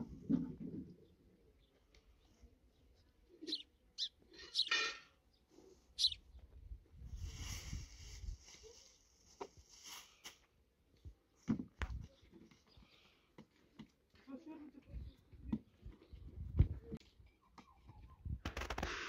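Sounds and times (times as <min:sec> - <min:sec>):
high-pitched animal calls: 0:06.0 - 0:06.2.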